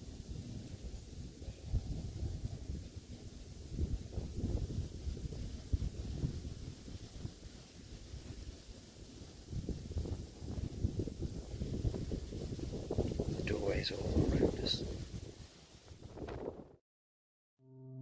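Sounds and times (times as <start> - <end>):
wind buffeting microphone: 0.0 - 16.8.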